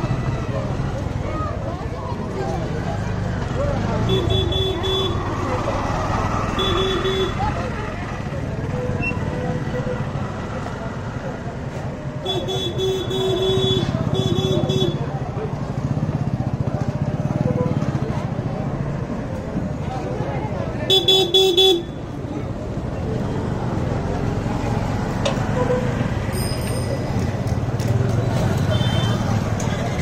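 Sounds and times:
motorcycle engines: 0.0 - 30.0
murmur of crowd voices: 0.0 - 30.0.

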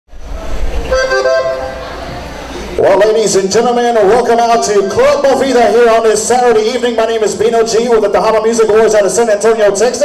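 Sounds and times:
button accordion notes: 0.9 - 2.4.

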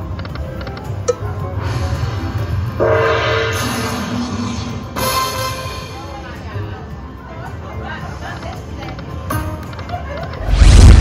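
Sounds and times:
low casino hum: 0.0 - 11.0
rushing noise: 10.4 - 11.0.

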